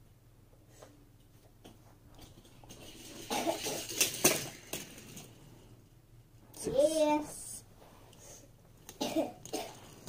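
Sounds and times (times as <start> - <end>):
toy cars rattling down plastic track: 2.2 - 5.4.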